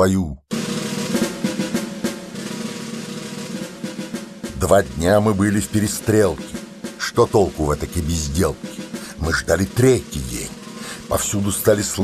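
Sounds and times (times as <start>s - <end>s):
rapid snare drum roll: 0.5s - 12.0s.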